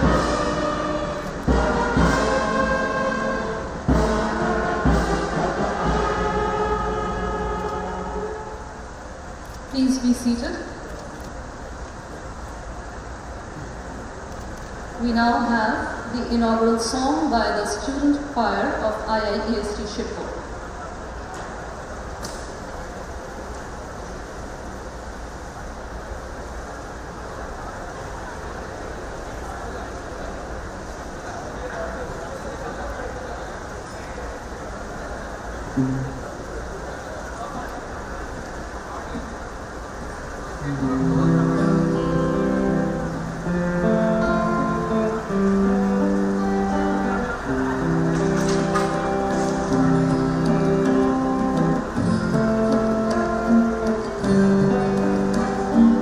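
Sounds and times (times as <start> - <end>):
murmur and hall noise: 0.0 - 56.0
harmonium and guitars playing chords: 35.8 - 36.3, 40.6 - 56.0.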